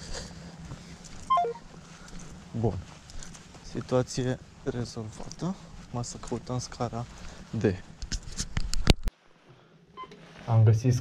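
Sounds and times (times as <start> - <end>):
descending phone tone: 1.3 - 1.7.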